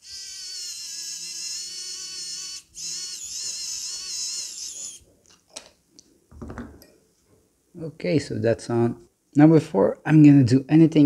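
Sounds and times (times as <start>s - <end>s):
electric screwdriver whining: 0.0s - 5.0s.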